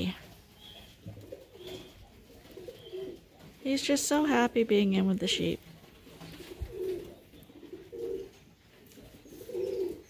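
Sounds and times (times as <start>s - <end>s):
bird cooing softly: 0.6s - 3.4s, 6.2s - 10.0s.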